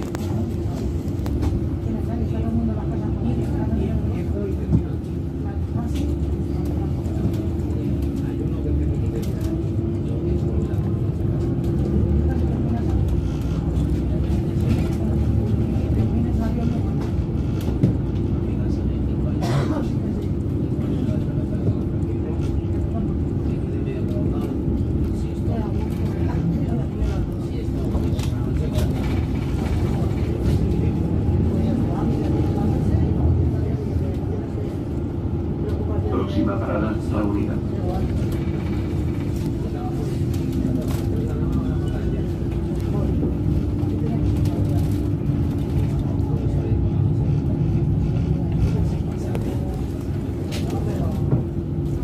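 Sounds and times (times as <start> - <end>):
bus engine and road noise: 0.0 - 52.0.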